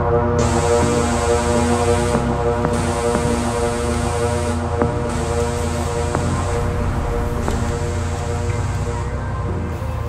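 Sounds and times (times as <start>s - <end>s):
droning tones: 0.0s - 10.0s
low steady rumble: 0.0s - 10.0s.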